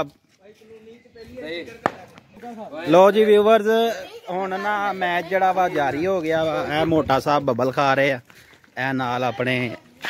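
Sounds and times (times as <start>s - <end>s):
cricket bat knock: 1.8s - 2.2s.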